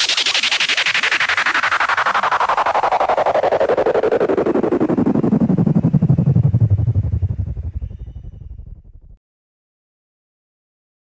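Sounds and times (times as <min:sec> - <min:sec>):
pulsing synth sweeping down: 0:00.0 - 0:09.2.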